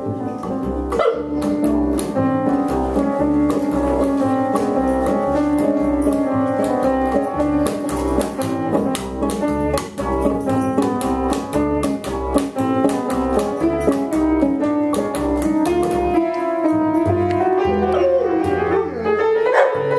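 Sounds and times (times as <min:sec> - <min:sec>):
bass line: 0:00.0 - 0:19.4
keyboard: 0:00.0 - 0:19.9
plucked banjo notes: 0:00.0 - 0:19.9.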